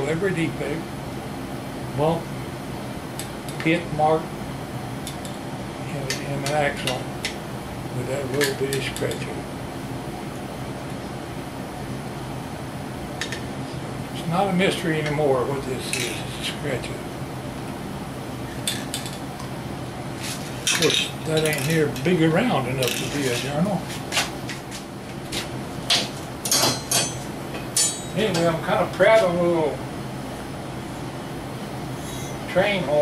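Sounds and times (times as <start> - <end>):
fan whirring: 0.0 - 33.0.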